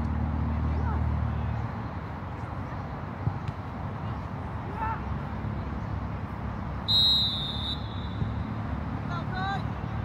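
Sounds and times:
referee's whistle blast: 0:06.9 - 0:08.2.

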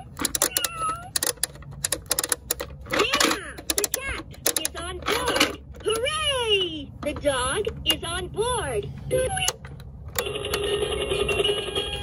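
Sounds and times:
chirpy electronic toy sounds: 0:00.0 - 0:01.4, 0:10.2 - 0:12.0
toy propeller plastic clicking: 0:00.0 - 0:06.3.

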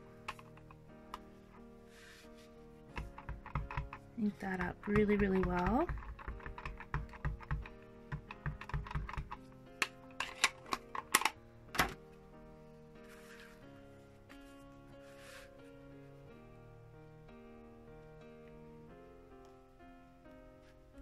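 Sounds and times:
soft background music: 0:00.0 - 0:21.0
ink pad tapping on stamp block: 0:02.9 - 0:09.9.

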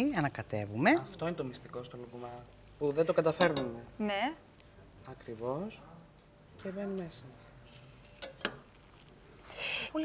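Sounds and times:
metal spoon knocking on pot: 0:03.4 - 0:03.8.

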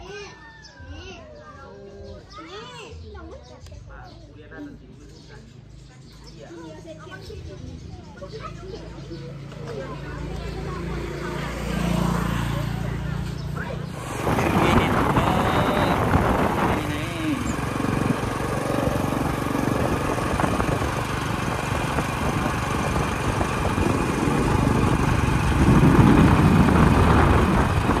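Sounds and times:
brief voices: 0:13.2 - 0:18.1
wind noise on microphone: 0:13.9 - 0:28.0.

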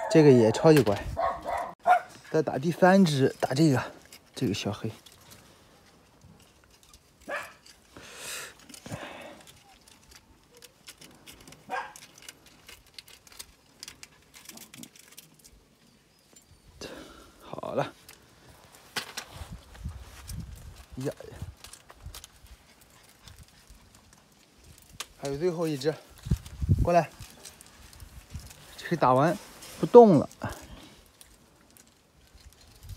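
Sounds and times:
soft rustling: 0:17.7 - 0:32.9.

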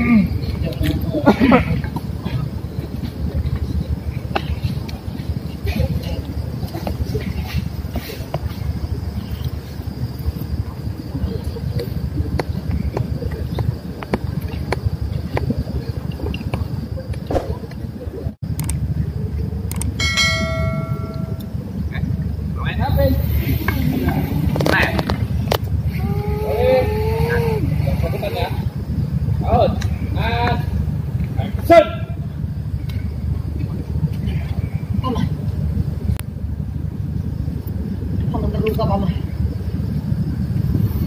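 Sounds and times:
low background rumble: 0:00.0 - 0:41.0
sharp click: 0:19.7 - 0:20.0
bell ding: 0:20.0 - 0:21.6
low rumble: 0:32.2 - 0:41.0.

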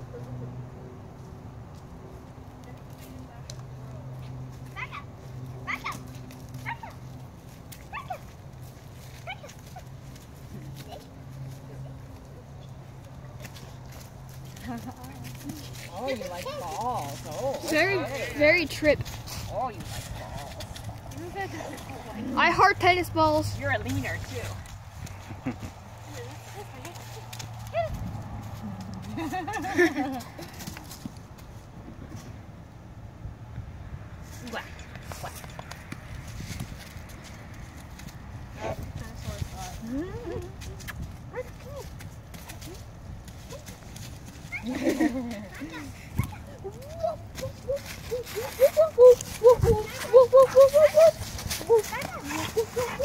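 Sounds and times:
dog steps rustling leaves: 0:02.8 - 0:31.5, 0:39.0 - 0:53.0
people laughing: 0:25.2 - 0:25.9, 0:29.0 - 0:30.6, 0:44.6 - 0:45.8, 0:48.2 - 0:51.3.

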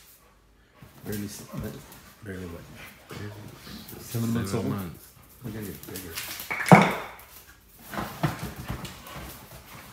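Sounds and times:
dog claws scrabbling on floor: 0:05.5 - 0:09.5.

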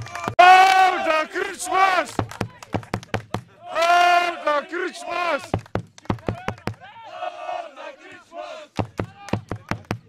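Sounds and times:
people shouting calls: 0:00.0 - 0:02.2, 0:03.5 - 0:05.6, 0:06.2 - 0:09.4.

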